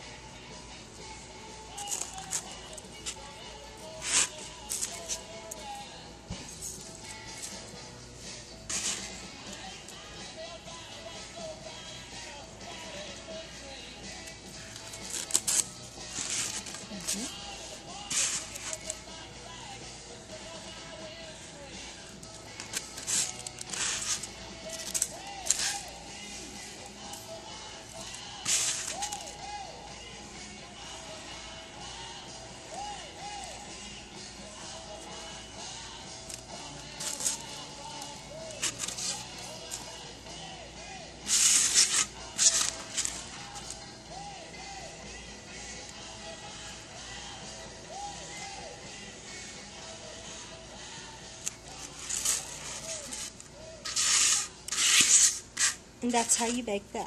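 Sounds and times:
faint background music: 0.0s - 57.0s.

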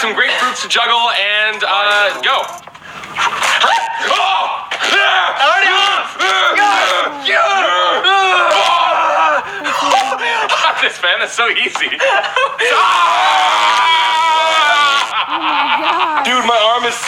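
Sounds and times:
men laughing: 3.2s - 17.0s
men yelling and screaming: 3.2s - 17.0s.

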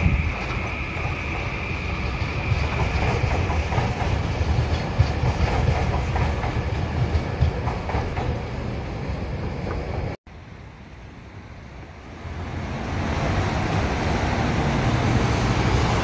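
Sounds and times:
train rumbling on rails: 0.0s - 16.0s.

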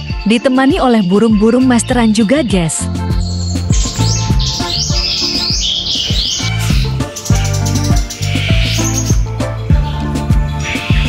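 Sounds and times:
background music with beat: 0.0s - 11.0s
songbirds chirping and singing: 0.0s - 11.0s.

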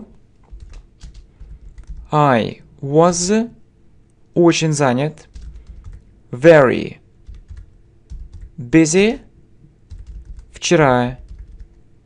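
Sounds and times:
computer keyboard typing: 0.4s - 2.1s, 5.2s - 6.1s, 7.2s - 8.6s, 9.8s - 10.6s, 11.2s - 11.8s.

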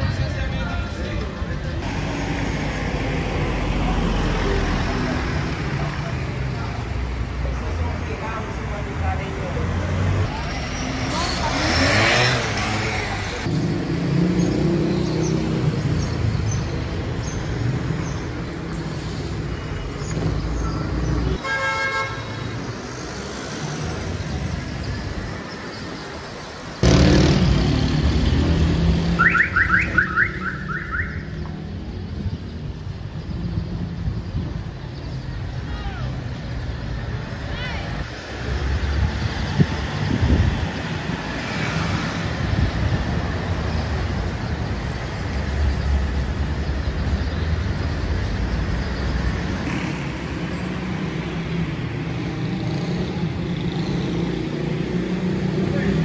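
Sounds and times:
passing cars rumble: 0.0s - 21.4s, 22.6s - 30.0s, 31.3s - 56.0s.

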